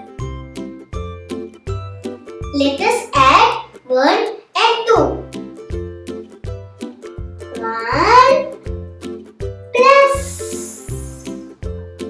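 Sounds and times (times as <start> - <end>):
children's music with plucked strings: 0.0 - 12.0
short voice-like note: 9.8 - 11.2
high hiss: 10.2 - 11.4.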